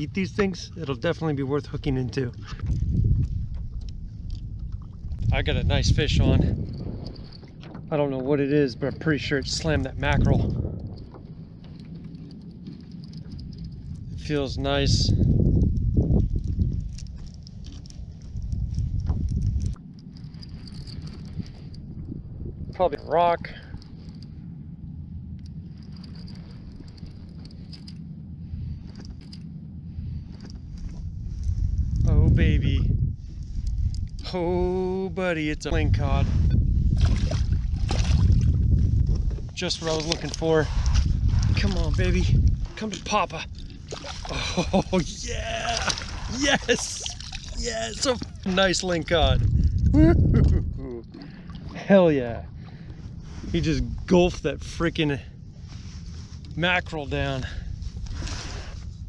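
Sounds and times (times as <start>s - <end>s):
wind buffeting microphone: 0.0s - 59.0s
fishing gear clicking: 10.2s - 14.6s, 15.2s - 22.0s, 25.3s - 28.2s, 28.9s - 29.6s, 33.6s - 34.3s, 39.1s - 51.8s.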